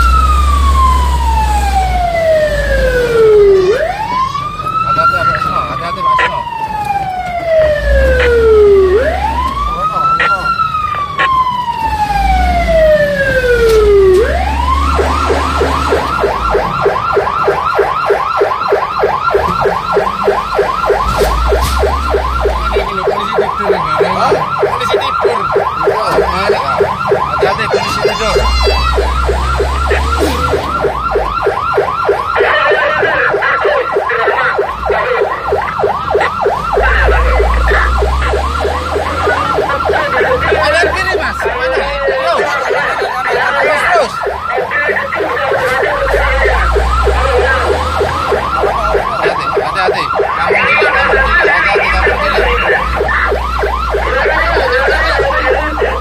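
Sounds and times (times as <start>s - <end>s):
emergency siren wailing and yelping: 0.0s - 56.0s
vehicle engine rumble: 0.0s - 56.0s.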